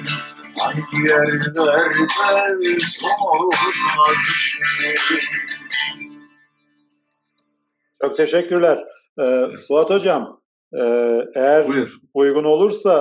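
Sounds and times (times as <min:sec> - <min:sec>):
man singing: 0:00.0 - 0:06.0, 0:10.8 - 0:12.0
strummed acoustic guitar: 0:00.0 - 0:07.0.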